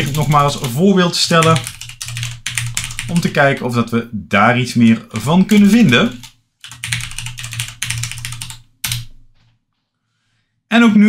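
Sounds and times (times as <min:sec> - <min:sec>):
fast typing on keyboard: 0:00.0 - 0:03.8, 0:05.0 - 0:09.2.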